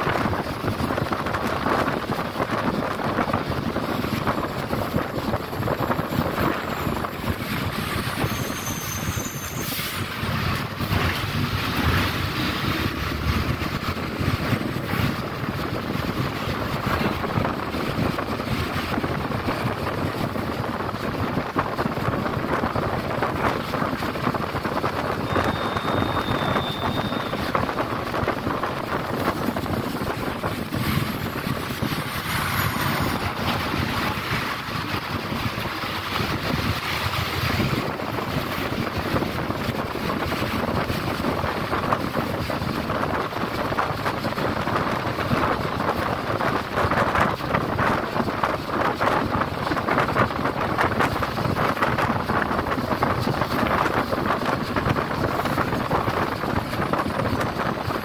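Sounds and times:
bus engine running: 0.0 - 58.0
tyres on wet road: 0.0 - 58.0
brief high tone: 25.3 - 27.3.

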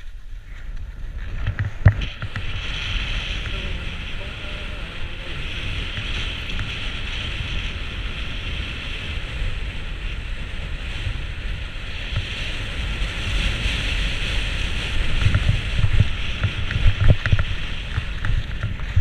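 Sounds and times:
skis bumping and knocking: 0.0 - 4.5, 14.9 - 19.0
skis scraping over crusty snow: 0.0 - 19.0
wind buffeting microphone: 0.0 - 19.0.

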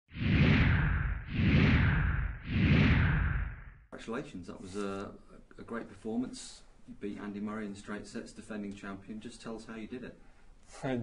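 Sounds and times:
whoosh sound effects: 0.1 - 3.8
deep rumble: 0.1 - 3.9.

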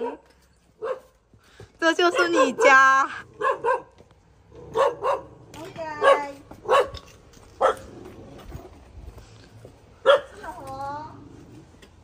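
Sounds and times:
dog barking: 0.0 - 1.1, 2.1 - 4.0, 4.6 - 5.4, 6.0 - 7.9, 10.0 - 10.4.

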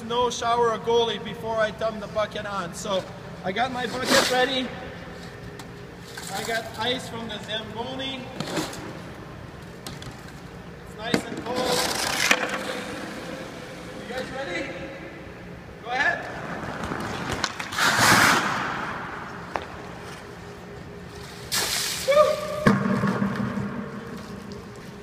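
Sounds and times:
hockey skates scraping ice: 3.8 - 4.6, 11.4 - 13.6, 16.3 - 20.4.

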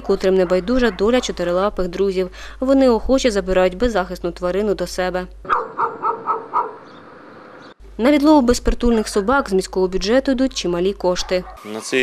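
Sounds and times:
faint background noise: 0.0 - 12.0
dog barking: 0.3 - 1.4, 5.5 - 6.9, 11.2 - 11.9.

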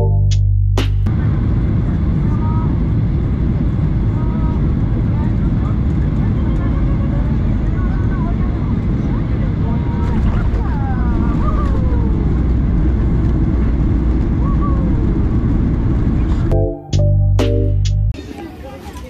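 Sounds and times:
music: 0.0 - 1.1, 16.5 - 18.2
airplane cabin roar: 0.0 - 19.0.

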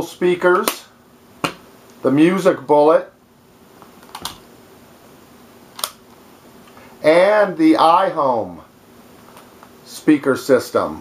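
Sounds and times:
plastic speakers clicking when handled: 4.0 - 4.4.

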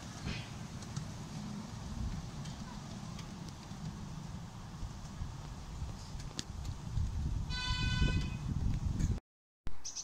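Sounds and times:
miniature train horn toot: 7.5 - 8.4.

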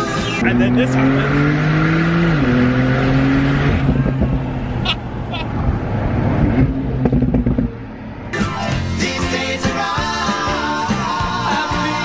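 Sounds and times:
music: 0.0 - 0.4, 8.4 - 12.0
wind noise in open car: 0.0 - 8.4
car engine: 0.0 - 11.4.

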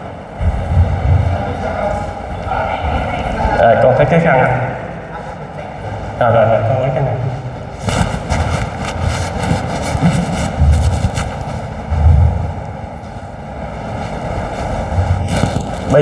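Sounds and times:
murmur of audience voices: 0.0 - 10.6
fans running: 0.0 - 16.0.

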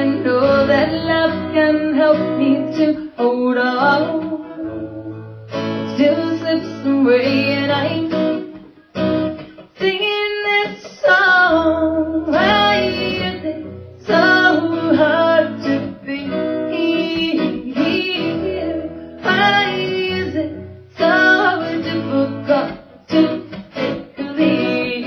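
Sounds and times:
woman singing: 0.0 - 8.7, 9.7 - 25.0
strummed acoustic guitar: 0.0 - 25.0.

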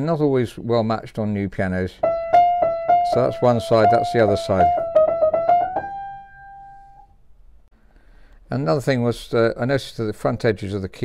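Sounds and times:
upright piano treble run: 2.0 - 7.0.

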